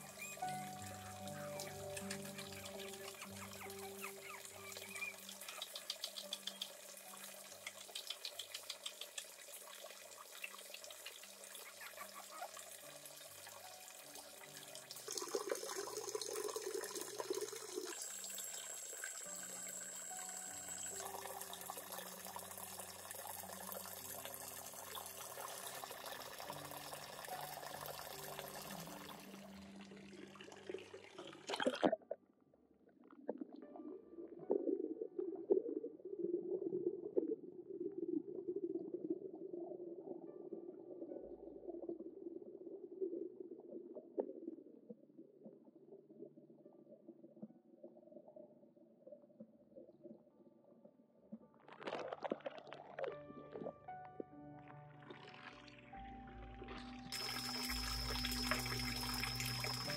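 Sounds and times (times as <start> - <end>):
water pouring into pond: 0.0 - 32.2, 51.5 - 54.0, 54.6 - 59.9
soft low tones: 55.8 - 59.9.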